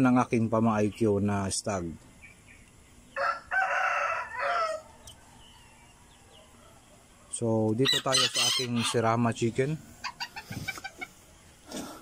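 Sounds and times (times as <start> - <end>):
rooster crowing: 3.1 - 6.8, 7.8 - 9.0.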